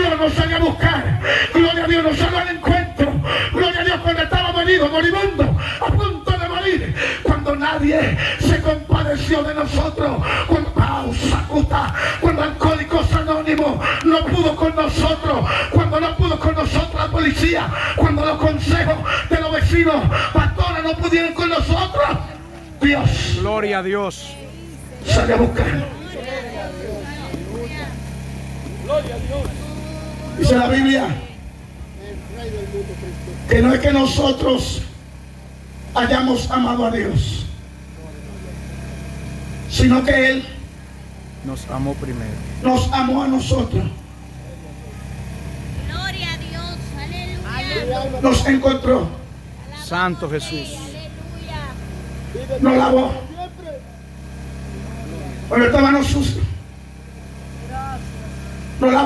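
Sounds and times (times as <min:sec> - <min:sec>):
man preaching through loudspeaker: 0:00.0 - 0:28.0, 0:28.8 - 0:35.1, 0:35.8 - 0:37.7, 0:39.5 - 0:40.7, 0:41.3 - 0:44.7, 0:47.6 - 0:51.0, 0:52.2 - 0:53.9, 0:55.3 - 0:56.8, 0:58.0 - 0:59.0
steady low hum: 0:00.0 - 0:59.0.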